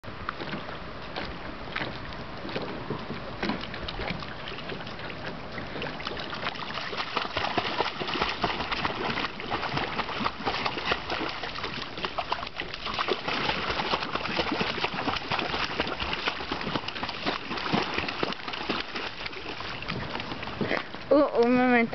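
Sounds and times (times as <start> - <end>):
dog splashing in water: 0.4 - 20.9.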